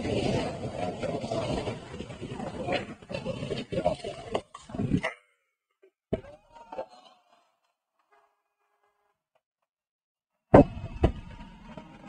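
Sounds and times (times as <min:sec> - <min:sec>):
people shouting and yelling: 0:06.1 - 0:07.7.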